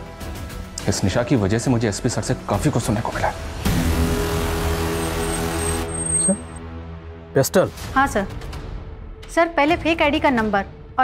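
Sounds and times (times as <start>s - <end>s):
road noise: 3.4s - 6.6s.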